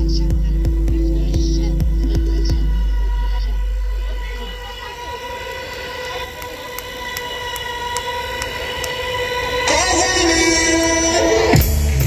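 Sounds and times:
amplified drone: 0.0s - 12.0s
rock band playing: 11.4s - 12.0s.

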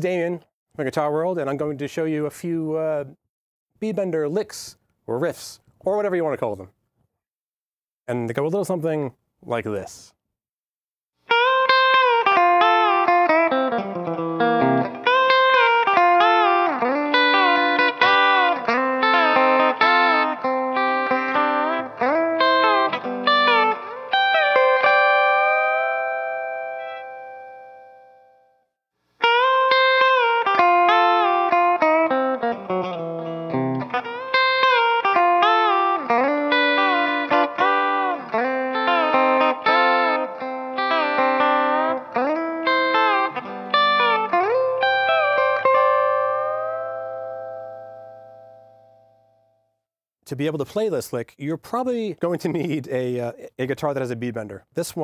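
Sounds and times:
electric guitar playing bent notes: 11.3s - 28.5s, 29.2s - 49.3s.

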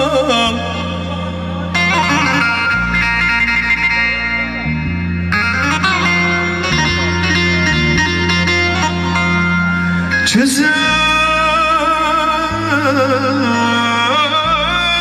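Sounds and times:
keyboard dance tune: 1.5s - 11.3s.

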